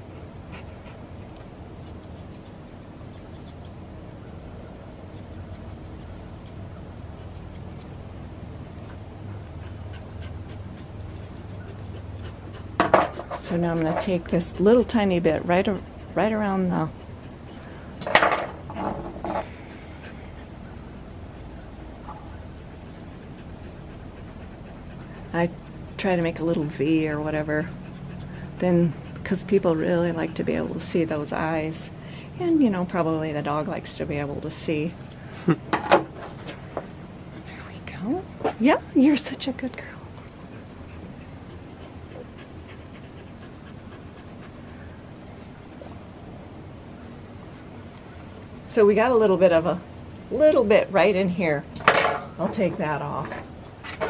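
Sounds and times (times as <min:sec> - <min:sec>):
dog panting: 0:00.0 - 0:04.2, 0:08.6 - 0:35.7, 0:38.8 - 0:47.7
small scissors snipping hair: 0:01.3 - 0:03.8, 0:05.1 - 0:08.0, 0:10.8 - 0:12.2, 0:21.4 - 0:28.6, 0:29.2 - 0:35.4.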